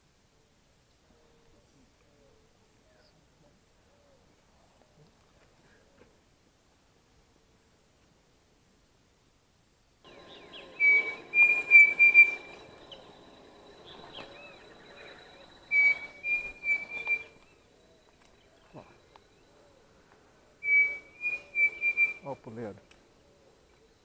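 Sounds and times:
cuckoo whistled song: 10.1s - 19.8s, 20.6s - 22.4s.

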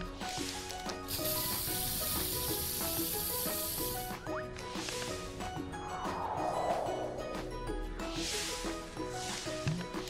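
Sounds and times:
light background music: 0.0s - 10.0s
cartoon spray can hissing: 1.1s - 4.2s.

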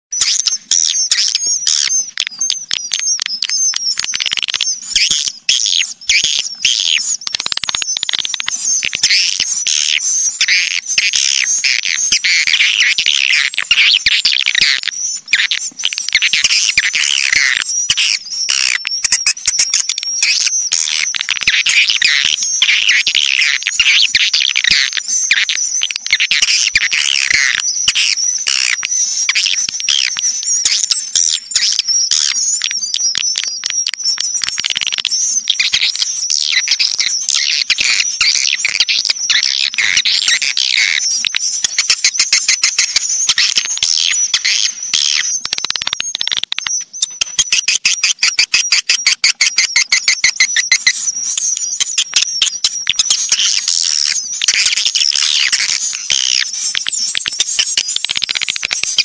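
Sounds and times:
rapid clicking bird calls: 0.1s - 59.0s
swiftlets twittering chirps: 0.1s - 59.0s.

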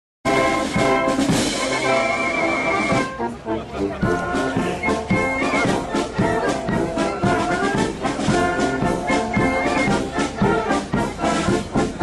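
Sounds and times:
brass band held chords: 0.3s - 12.0s.

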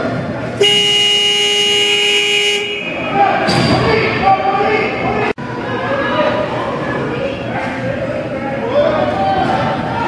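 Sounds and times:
voices of players and spectators: 0.0s - 1.0s, 2.0s - 10.0s
arena horn: 0.6s - 3.2s.

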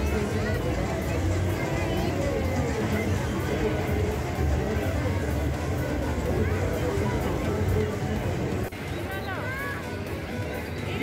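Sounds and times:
bass-heavy music over speakers: 0.0s - 8.7s
crowd chatter: 0.0s - 11.0s.

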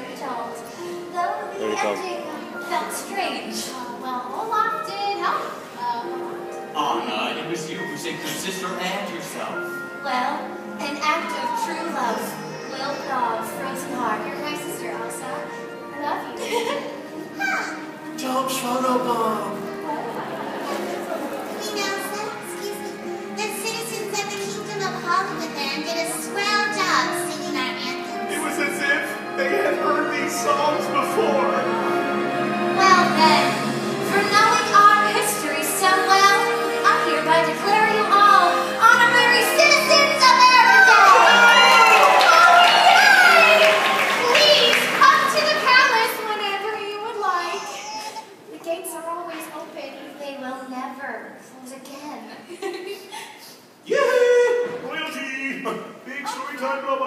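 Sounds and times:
background music: 0.0s - 52.5s, 53.1s - 57.0s
children calling out and cheering: 10.8s - 13.7s, 38.0s - 48.2s.

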